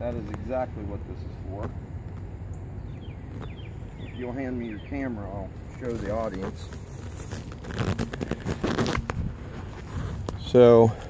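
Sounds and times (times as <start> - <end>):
camera handling knocks and rubbing: 5.7 - 10.4.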